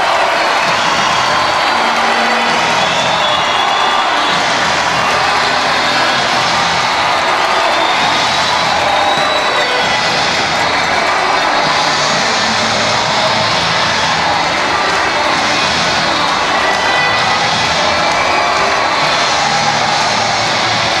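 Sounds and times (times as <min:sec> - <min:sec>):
crowd cheering: 0:00.0 - 0:21.0
music playing: 0:00.0 - 0:21.0.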